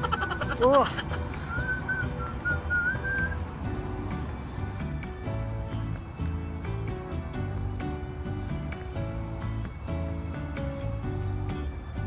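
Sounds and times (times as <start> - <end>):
whistled melody over low beat: 1.3 - 12.0.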